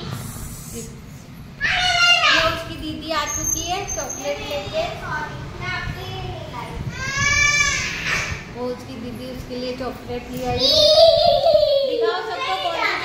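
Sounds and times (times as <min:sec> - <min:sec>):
children shouting: 0:01.6 - 0:02.6, 0:06.9 - 0:08.4, 0:10.6 - 0:13.0.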